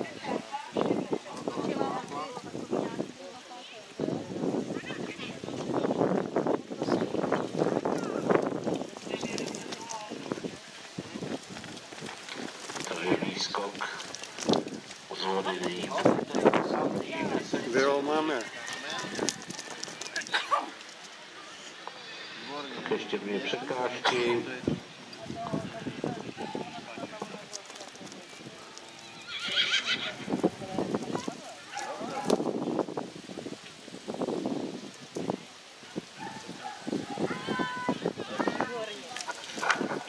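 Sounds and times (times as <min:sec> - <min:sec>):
people talking: 0:00.0 - 0:11.4, 0:12.8 - 0:14.1, 0:15.1 - 0:32.5, 0:37.0 - 0:40.0
horse hoofbeats on grass: 0:04.8 - 0:21.2, 0:25.2 - 0:33.0, 0:36.0 - 0:40.0
horse whinnying: 0:29.1 - 0:30.3.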